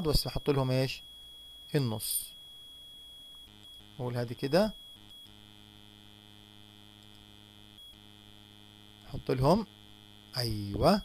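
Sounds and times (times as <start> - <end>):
faint electrical hum: 0.0 - 11.0
thin high whine: 0.0 - 11.0.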